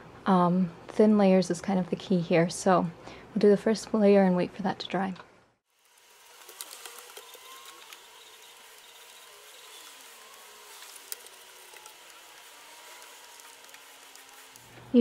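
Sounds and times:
steady hiss: 5.7 - 15.0.

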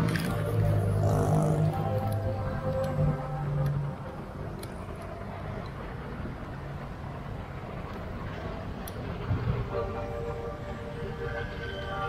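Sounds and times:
moving vehicle rumble: 0.0 - 12.0.

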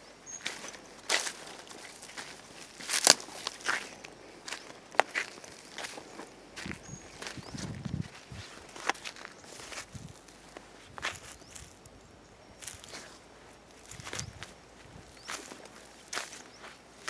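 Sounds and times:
footsteps on dry leaves and twigs: 0.0 - 17.0.

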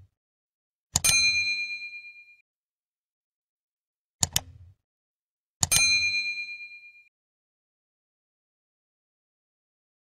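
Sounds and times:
mouse click: 4.2 - 4.6
bright ding: 5.7 - 7.1.

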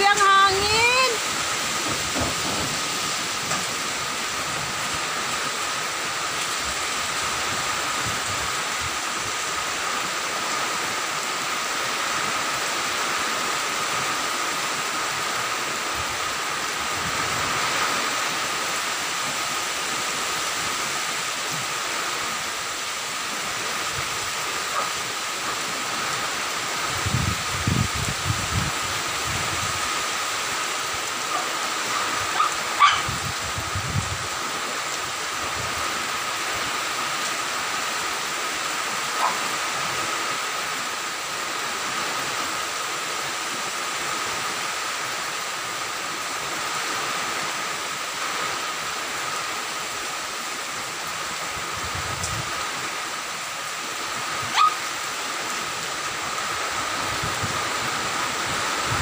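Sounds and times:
wind gusts buffeting microphone: 0.0 - 9.7, 15.1 - 19.9, 23.3 - 30.1, 30.8 - 36.7, 51.3 - 53.0, 55.4 - 59.0
wind and heavy rain rushing: 0.0 - 59.0.

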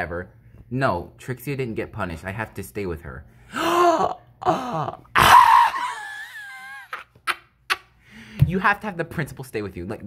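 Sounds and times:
person gasping: 3.4 - 5.1, 8.0 - 8.5.

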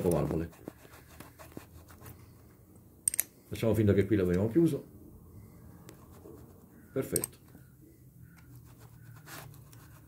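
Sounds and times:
light metallic clicks: 3.0 - 3.3.

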